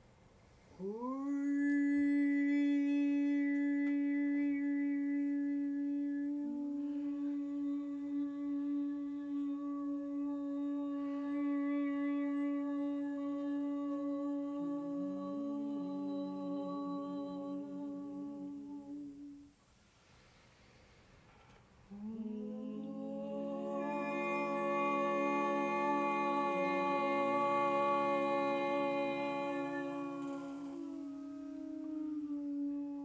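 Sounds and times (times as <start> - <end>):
voices humming a drone: 21.9 - 33.0.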